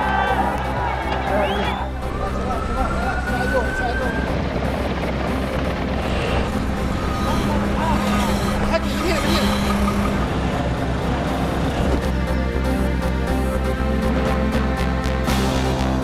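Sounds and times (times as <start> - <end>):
many voices talking and calling: 0.0 - 12.1
vehicle noise: 0.0 - 15.1.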